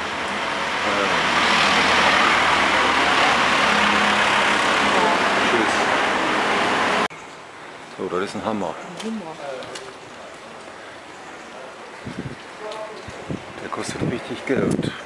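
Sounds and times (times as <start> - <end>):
road traffic rushing: 0.0 - 8.6.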